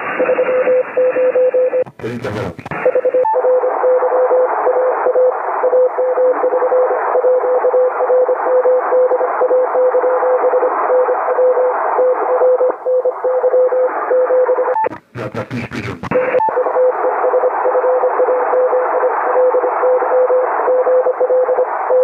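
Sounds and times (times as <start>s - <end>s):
radio band hiss: 1.8s - 3.0s, 14.8s - 17.2s.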